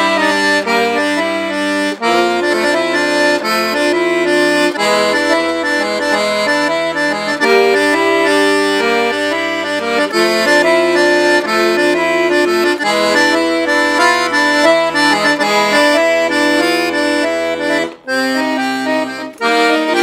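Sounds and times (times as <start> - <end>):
accordion tune: 0.0 - 20.0.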